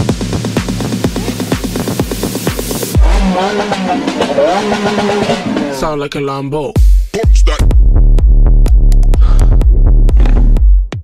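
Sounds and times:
deep bass hit: 0:00.0 - 0:05.6, 0:06.8 - 0:11.0
trap music: 0:00.0 - 0:05.9
car engine revving: 0:00.0 - 0:06.1.

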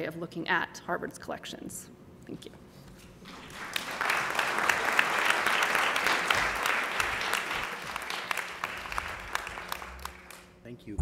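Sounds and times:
audience applauding: 0:03.4 - 0:10.5.

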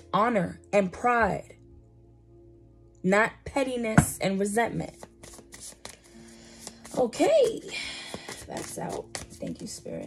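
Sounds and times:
cards being shuffled by hand: 0:04.9 - 0:10.0.

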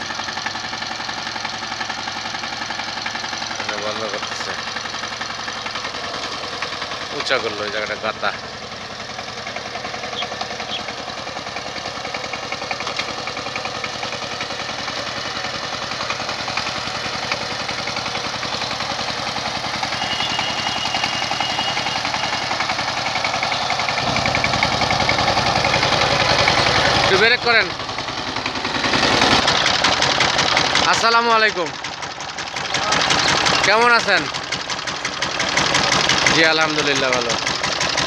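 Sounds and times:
diesel tiller engine running: 0:00.0 - 0:38.0.

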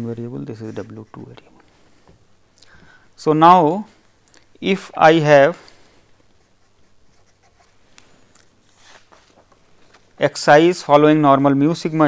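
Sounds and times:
marker pen scratching on paper: 0:00.6 - 0:01.5, 0:06.2 - 0:09.0.

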